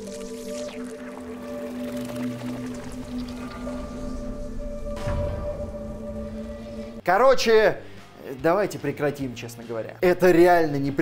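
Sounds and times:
sustained film score drone: 0.0 - 7.0
deep low note: 2.6 - 7.0.

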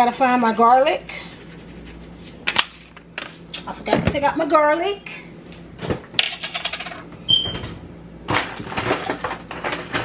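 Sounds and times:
kitchen containers and utensils clattering: 6.2 - 7.1, 8.3 - 10.0.

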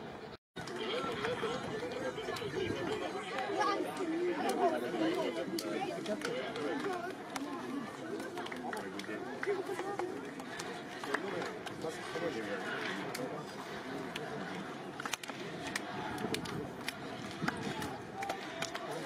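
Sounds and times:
men's voices chattering: 0.6 - 19.0.

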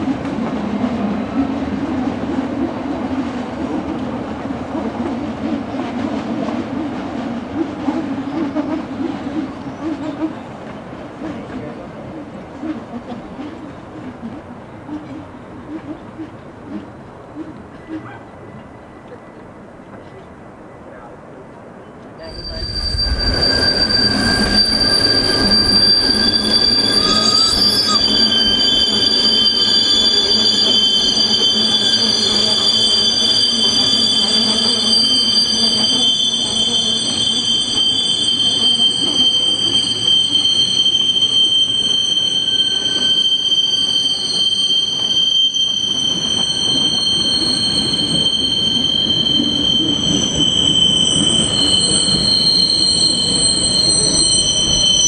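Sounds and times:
train wheels squealing: 6.8 - 17.0, 17.6 - 21.1, 21.8 - 55.0
train running gear rumble: 21.5 - 34.3.

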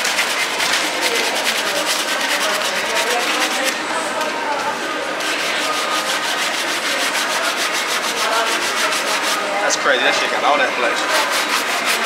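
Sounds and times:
brush scrubbing a sneaker: 0.0 - 3.7, 5.2 - 9.5, 11.0 - 12.0.

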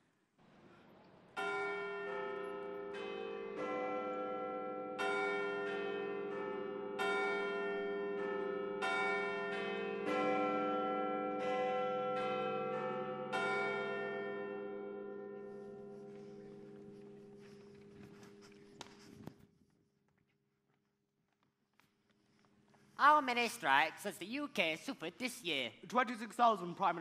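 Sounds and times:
bells chiming: 1.4 - 19.0.

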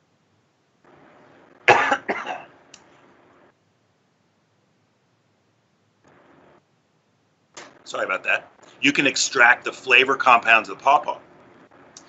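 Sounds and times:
man coughing: 1.7 - 2.6.

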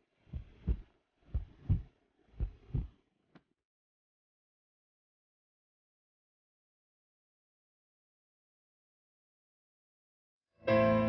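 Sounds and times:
slow heartbeat: 0.2 - 3.0.

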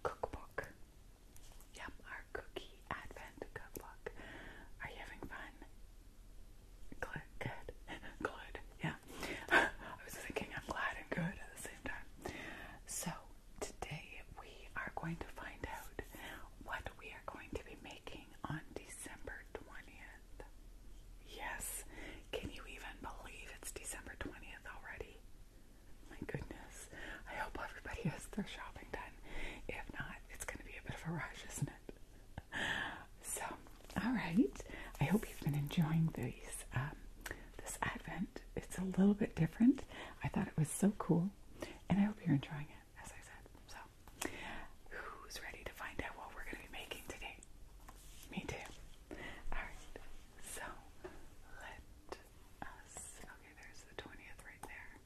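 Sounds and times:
woman whispering: 0.0 - 0.8, 1.6 - 5.7, 6.9 - 20.6, 21.2 - 25.2, 26.0 - 55.0.

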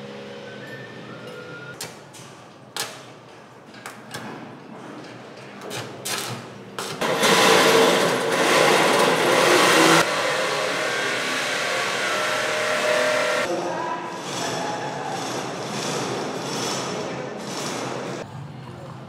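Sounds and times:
construction machine and tool noise: 0.0 - 2.6, 3.3 - 19.0.

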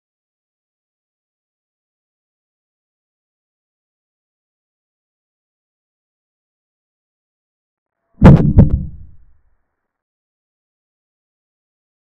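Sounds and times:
sharp knocks sound effect: 8.2 - 9.2.

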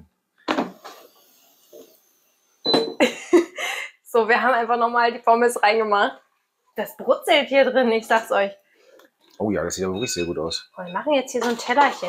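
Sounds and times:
woman laughing: 3.0 - 4.0.

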